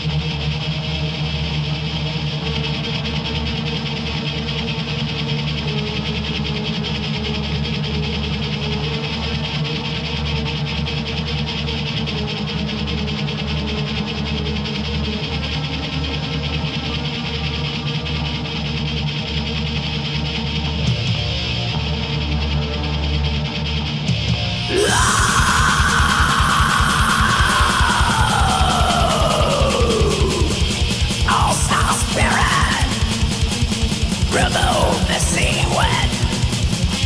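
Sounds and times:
black metal instrumental: 0:00.0 - 0:37.0
distorted electric guitars: 0:00.0 - 0:37.0.

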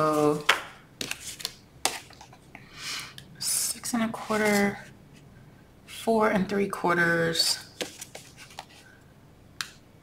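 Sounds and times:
paper sliding rustle: 0:04.2 - 0:04.9, 0:07.8 - 0:08.9.

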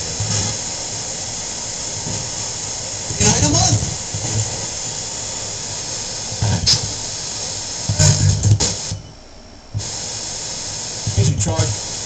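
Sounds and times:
radio static hiss: 0:00.0 - 0:12.0
broadcast voice snatches: 0:03.1 - 0:04.7, 0:06.3 - 0:07.0, 0:07.8 - 0:08.9, 0:11.0 - 0:12.0.

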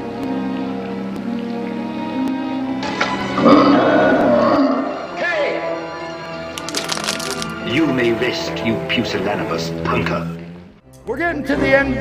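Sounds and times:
sharp crackles: 0:06.6 - 0:07.6.

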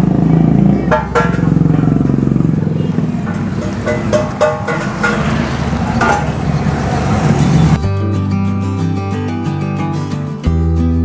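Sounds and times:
traffic rumble: 0:00.0 - 0:07.8.

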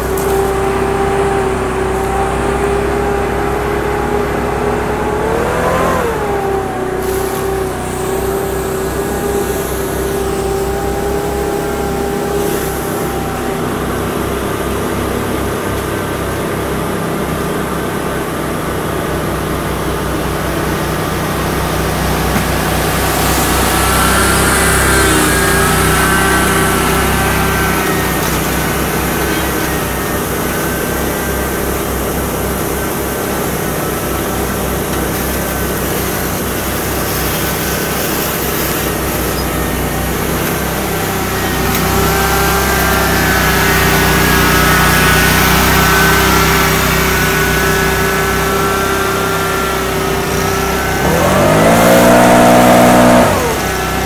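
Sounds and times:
riding mower engine running: 0:00.0 - 0:54.0
high-pitched whine: 0:20.0 - 0:54.0.

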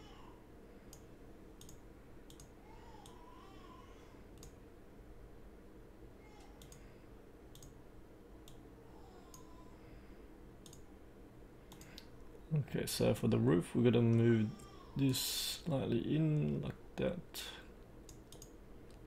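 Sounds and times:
faint low hum: 0:00.0 - 0:19.0
computer mouse clicking: 0:00.9 - 0:03.2, 0:04.4 - 0:04.6, 0:06.6 - 0:06.9, 0:07.5 - 0:07.8, 0:08.4 - 0:08.6, 0:10.6 - 0:10.9, 0:11.7 - 0:12.1, 0:18.0 - 0:19.0.

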